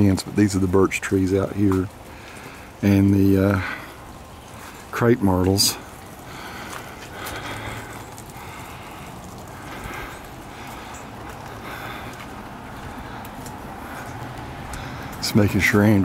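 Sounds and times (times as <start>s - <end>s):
footsteps on wet pavement: 0.0s - 16.0s
steady outdoor hiss: 0.0s - 16.0s
faint ticks: 5.9s - 15.4s.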